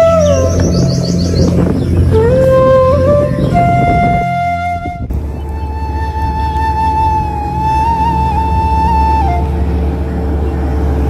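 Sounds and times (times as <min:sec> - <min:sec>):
high bird-like chirps: 0:00.0 - 0:03.7
flute note sliding down: 0:00.0 - 0:10.0
low drone: 0:00.0 - 0:11.0.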